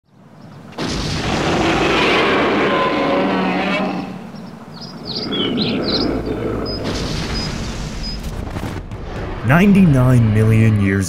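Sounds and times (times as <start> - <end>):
birds chirping: 0.0 - 8.4.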